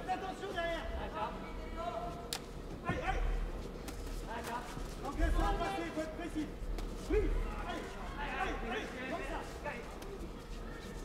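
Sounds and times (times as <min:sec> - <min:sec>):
voices shouting in a hall: 0:05.1 - 0:11.0.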